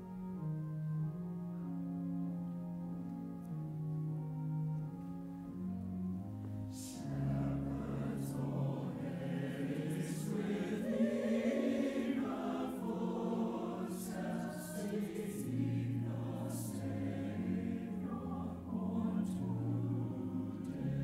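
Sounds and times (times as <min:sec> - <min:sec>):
choir singing in parts: 0:06.7 - 0:21.0.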